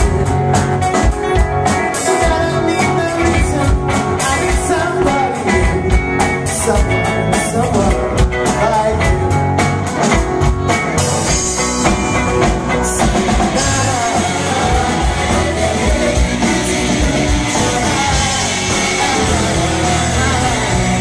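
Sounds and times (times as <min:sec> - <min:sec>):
person singing lead vocal: 0:00.0 - 0:10.2, 0:12.3 - 0:21.0
bass guitar: 0:00.0 - 0:21.0
drum kit: 0:00.0 - 0:21.0
electric and acoustic guitars: 0:00.0 - 0:21.0.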